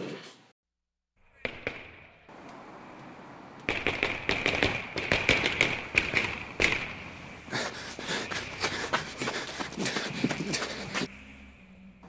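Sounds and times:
fireworks bangs: 0:03.7 - 0:07.4.

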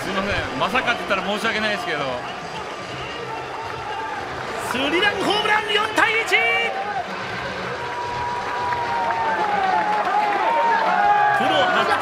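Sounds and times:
crowd cheering and shouting: 0:00.0 - 0:12.0
stadium noise: 0:00.0 - 0:12.0.

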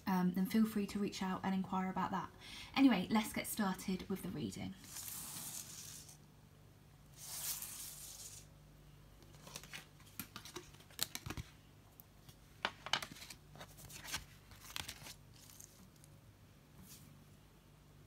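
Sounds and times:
playing cards rustling: 0:09.2 - 0:11.6, 0:12.6 - 0:16.1.

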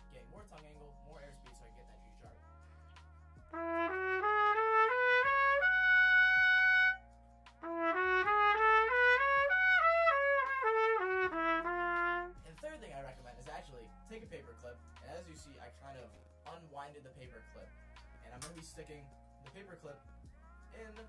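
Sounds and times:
solo trumpet playing: 0:03.5 - 0:07.0, 0:07.6 - 0:12.4.

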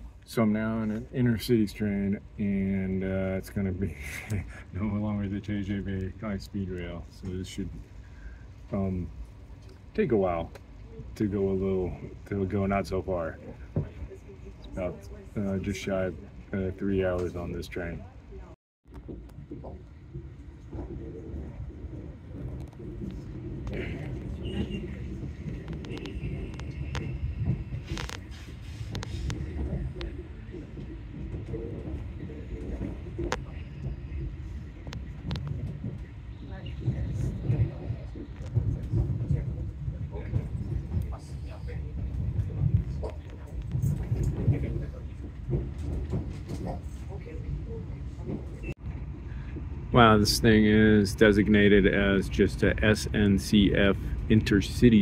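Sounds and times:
train carriage rumble: 0:00.0 - 0:55.0
wheels clicking on track: 0:00.2 - 0:55.0.

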